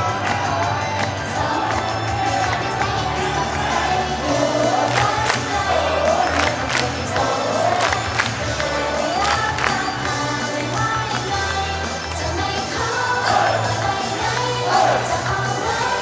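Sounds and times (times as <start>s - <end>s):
crowd shouting and cheering: 0.0s - 16.0s
girls singing pop: 0.0s - 16.0s.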